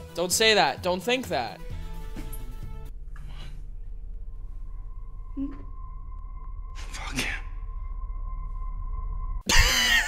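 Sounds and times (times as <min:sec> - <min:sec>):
low rumbling drone: 0:02.7 - 0:09.4.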